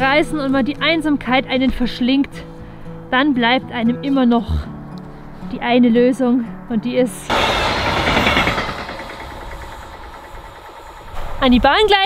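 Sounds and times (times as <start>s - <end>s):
train rumbling by: 7.2s - 12.0s.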